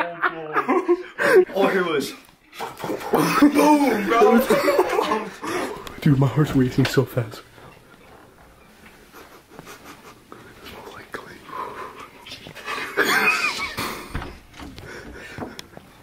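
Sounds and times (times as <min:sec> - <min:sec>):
young men panting and whispering: 0:00.9 - 0:01.6, 0:05.1 - 0:06.1, 0:09.0 - 0:13.0, 0:13.8 - 0:16.0
stifled laughter: 0:09.1 - 0:10.4, 0:12.6 - 0:14.3.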